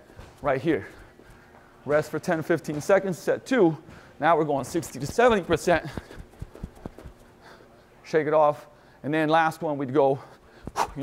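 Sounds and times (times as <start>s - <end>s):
quick footfalls on the spot: 3.9s - 7.3s.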